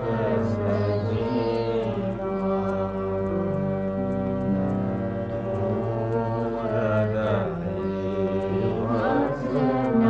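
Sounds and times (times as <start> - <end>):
held drone accompaniment: 0.0 - 10.0
person singing devotional song: 0.0 - 10.0.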